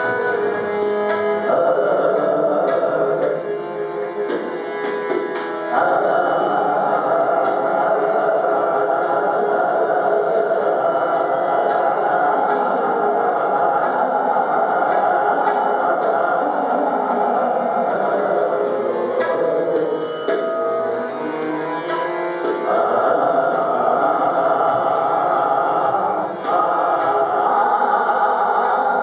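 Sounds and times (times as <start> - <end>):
harmonium: 0.0 - 29.0
man singing classical vocals: 0.0 - 29.0
tabla: 0.0 - 29.0
tanpura drone: 0.0 - 29.0.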